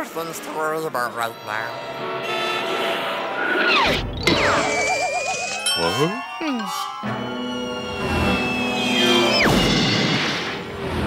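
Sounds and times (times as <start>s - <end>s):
cartoon falling sound: 3.7s - 5.6s, 8.0s - 10.6s.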